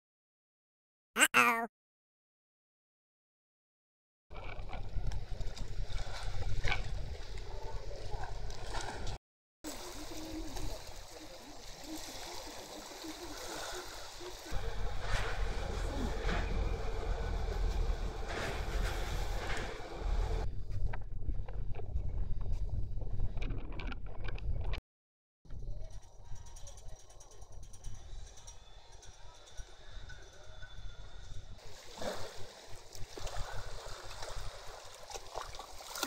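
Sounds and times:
water lapping: 5.2s - 20.4s, 31.6s - 36.0s
wind rumbling on microphone: 14.9s - 24.8s.

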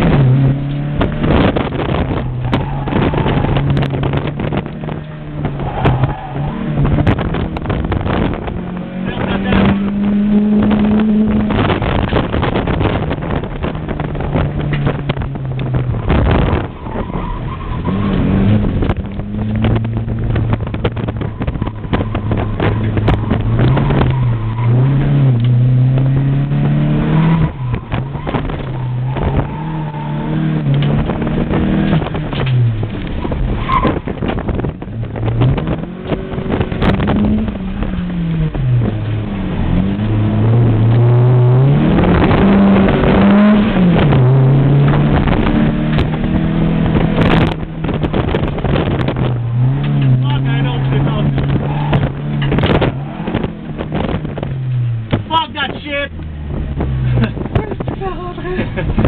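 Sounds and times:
car engine revving: 0.0s - 59.0s
tyre and wind noise: 0.0s - 59.0s.

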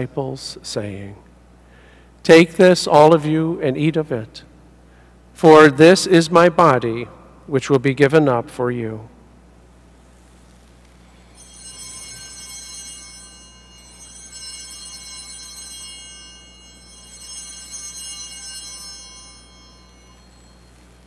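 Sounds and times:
small bells ringing: 11.0s - 21.0s.

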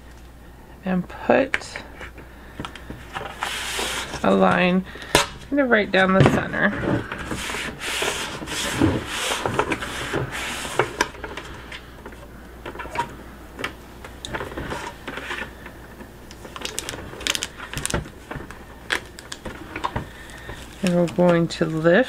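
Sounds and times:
hands rubbing tape on plastic bucket: 3.1s - 4.4s, 7.1s - 11.1s
light clicks and crinkles: 16.3s - 21.9s.

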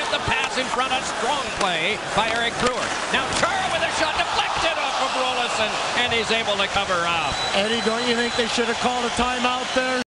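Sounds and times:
hockey sticks and puck clacking: 0.0s - 0.7s, 1.5s - 4.2s
arena crowd din: 0.0s - 10.0s
play-by-play commentary: 0.0s - 10.0s.

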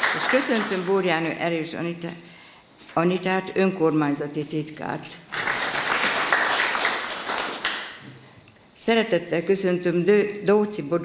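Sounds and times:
audience applauding: 0.0s - 1.0s, 5.3s - 8.0s.

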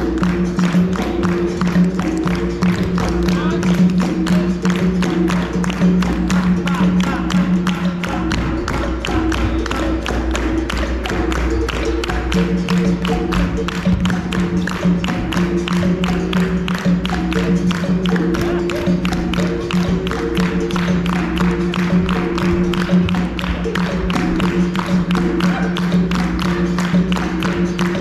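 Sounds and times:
hand clapping: 0.0s - 28.0s
hand drum: 0.0s - 28.0s.

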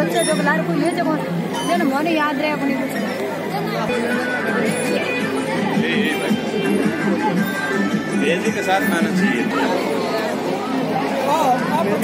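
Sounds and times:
crowd chatter: 0.0s - 12.0s
music playing: 0.0s - 12.0s.

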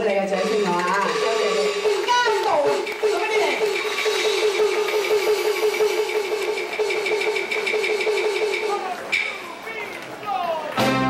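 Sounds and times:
rapidly pulsing note: 0.3s - 8.7s
live band: 10.7s - 11.0s.

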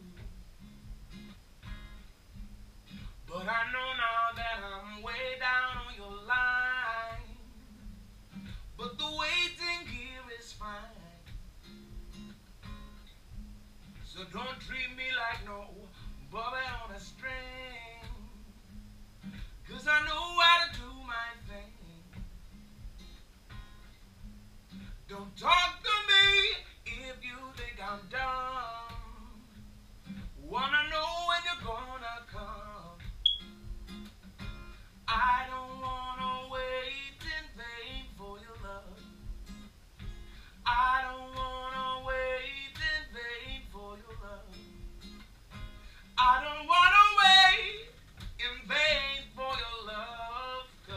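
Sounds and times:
acoustic guitar strummed and picked: 0.0s - 50.9s
man singing wordless phrases: 3.2s - 7.9s, 8.8s - 11.3s, 14.1s - 18.5s, 19.6s - 22.2s, 25.1s - 29.5s, 30.4s - 33.1s, 35.1s - 39.1s, 40.6s - 44.7s, 46.1s - 50.9s.

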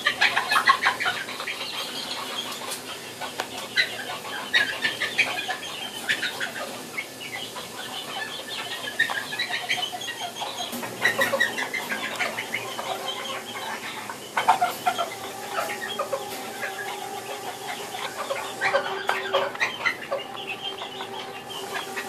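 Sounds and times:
chickens clucking: 0.0s - 22.0s.

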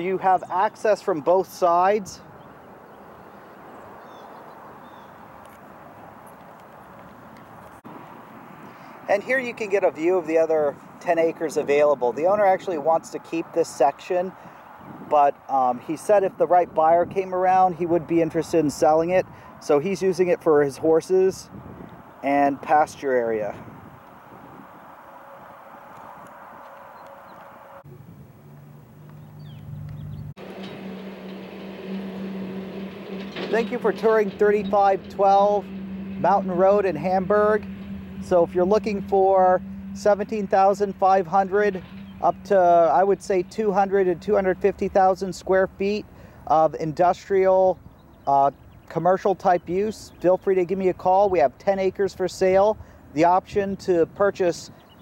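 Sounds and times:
outdoor background noise: 0.0s - 55.0s.

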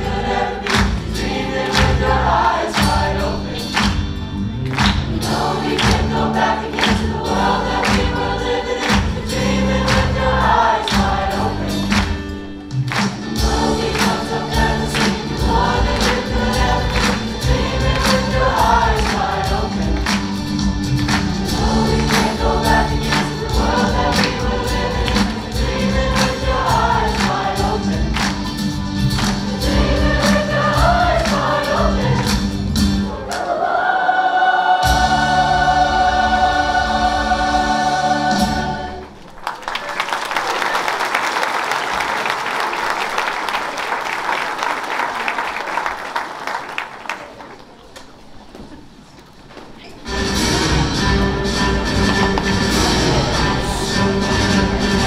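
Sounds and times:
choir singing a pop song: 0.0s - 4.2s, 4.8s - 12.4s, 13.2s - 39.2s, 50.1s - 55.0s
music with steady drum beat: 0.0s - 33.1s
audience applause: 0.1s - 32.3s, 39.0s - 48.2s.

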